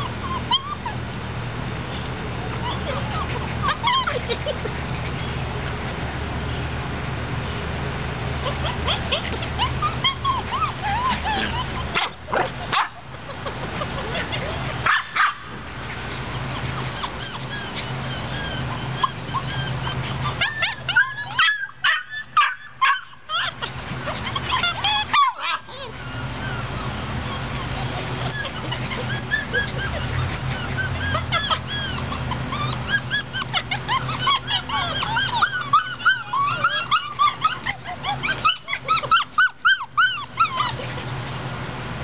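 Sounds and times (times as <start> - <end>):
puppies yipping and barking: 0.0 - 42.0.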